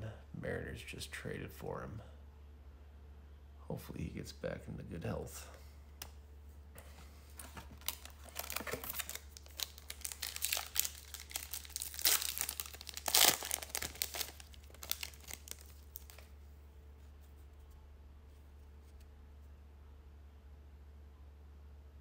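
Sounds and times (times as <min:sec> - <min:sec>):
foil wrapper tearing and crinkling: 0:07.7 - 0:16.3.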